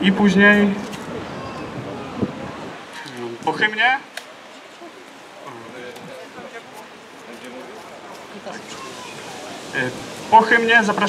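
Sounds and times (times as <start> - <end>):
outdoor background noise: 0.0 - 11.0
people talking quietly: 0.0 - 11.0.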